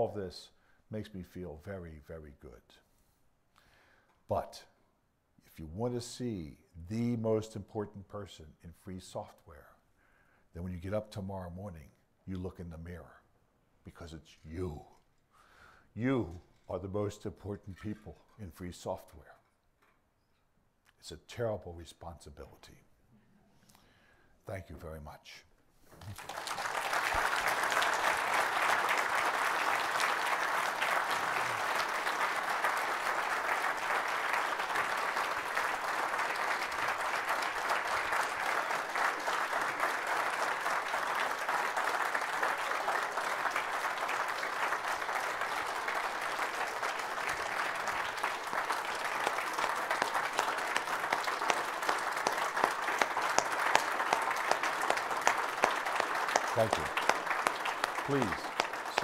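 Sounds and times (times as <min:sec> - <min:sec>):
audience applauding: 0:26.0 - 0:59.0.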